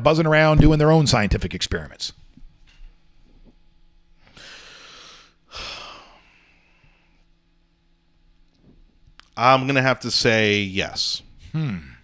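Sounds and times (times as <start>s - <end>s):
man sighing: 4.4s - 6.4s, 11.5s - 12.0s.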